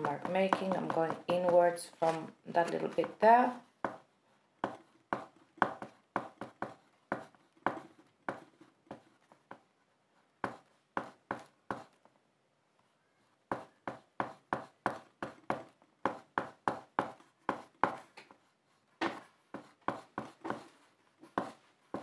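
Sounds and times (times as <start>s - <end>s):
oil pastel scratching on paper: 0.0s - 12.0s, 13.3s - 22.0s.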